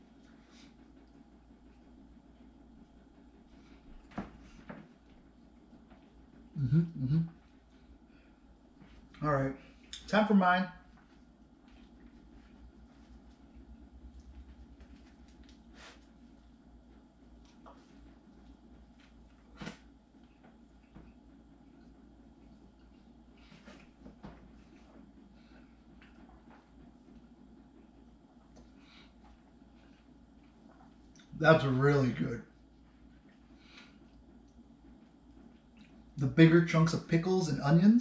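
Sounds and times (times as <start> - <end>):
faint room hum: 0.0 - 38.0.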